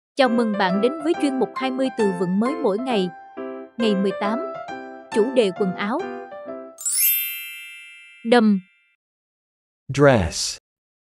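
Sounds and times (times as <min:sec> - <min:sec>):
music jingle: 0:00.2 - 0:08.6
bright bell-like chime: 0:06.8 - 0:09.0.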